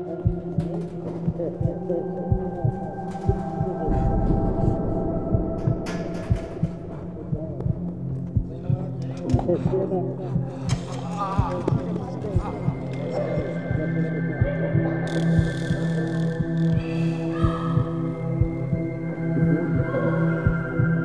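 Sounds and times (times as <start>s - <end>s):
low drone: 0.0s - 21.0s
muffled wavering voices: 0.0s - 21.0s
low thumps: 0.2s - 9.8s.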